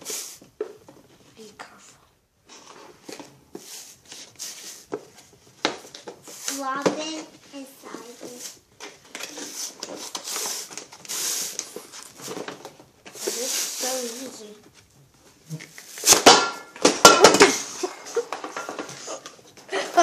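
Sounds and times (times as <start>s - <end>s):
toy packaging rustling and crinkling: 2.5s - 20.0s
child's vocal sound: 19.1s - 20.0s.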